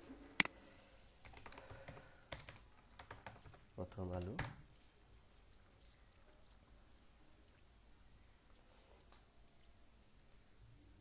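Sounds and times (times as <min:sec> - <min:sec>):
computer keyboard typing: 0:01.2 - 0:04.6.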